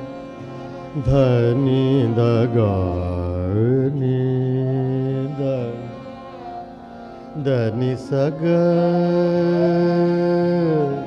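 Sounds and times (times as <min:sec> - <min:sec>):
man singing ornamented line: 0:00.0 - 0:06.6, 0:07.2 - 0:11.0
held accompaniment drone: 0:00.0 - 0:11.0.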